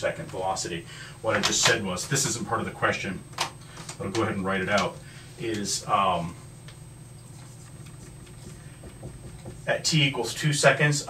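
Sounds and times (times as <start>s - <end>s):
steady low hum: 0.0s - 11.0s
marker writing on whiteboard: 7.2s - 9.9s.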